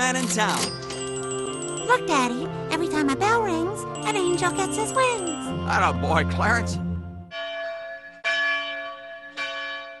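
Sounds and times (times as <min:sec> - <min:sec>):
bell ringing: 0:00.6 - 0:06.7.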